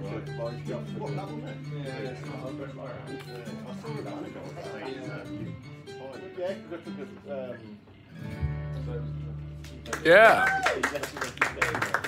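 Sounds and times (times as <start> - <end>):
acoustic guitars playing: 0.0 - 10.4
bass guitar: 8.1 - 10.3.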